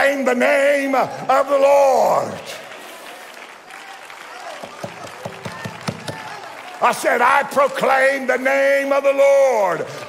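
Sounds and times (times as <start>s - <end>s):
congregation applauding: 0.1s - 10.0s.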